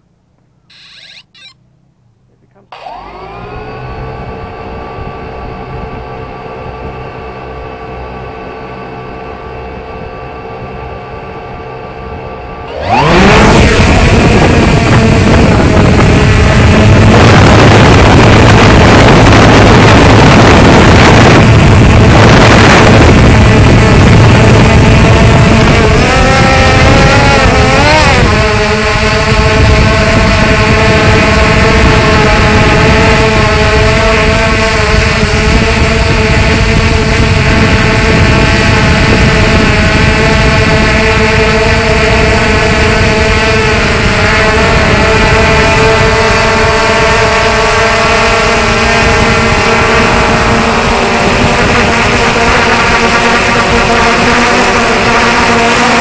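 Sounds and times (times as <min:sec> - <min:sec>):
drone motors whining: 0:00.0 - 0:56.0.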